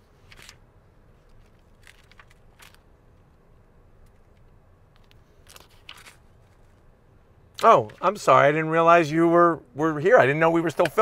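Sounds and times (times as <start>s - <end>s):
soft rustles: 4.0s - 6.9s.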